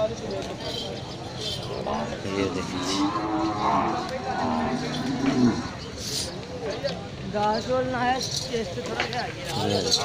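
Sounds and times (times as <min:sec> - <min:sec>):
cow mooing: 0:02.3 - 0:05.8.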